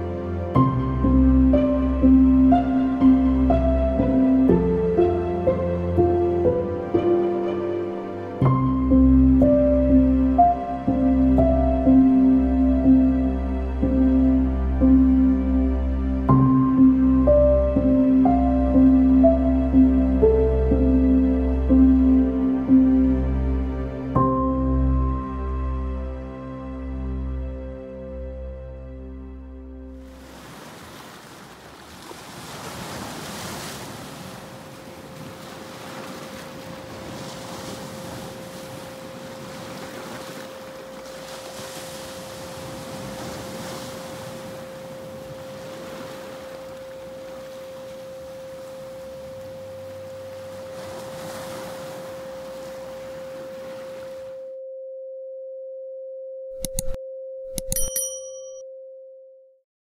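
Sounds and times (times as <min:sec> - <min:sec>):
surf washing over rocks: 0:30.1 - 0:54.3
steady pure tone: 0:36.6 - 0:59.6
click: 0:56.6 - 0:58.0
short bell-like ding: 0:56.6 - 0:58.8.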